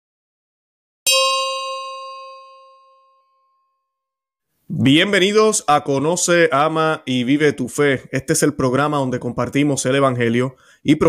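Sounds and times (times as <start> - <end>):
bell chime: 1.1 - 3.8.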